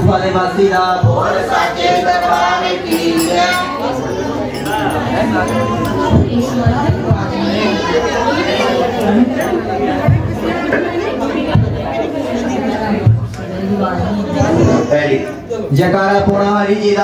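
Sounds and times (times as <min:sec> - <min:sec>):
people talking over one another: 0:00.0 - 0:17.0.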